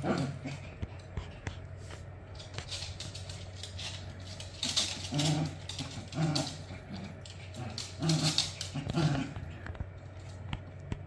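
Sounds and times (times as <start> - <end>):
dogs growling in play: 0.0 - 1.2, 3.4 - 10.3.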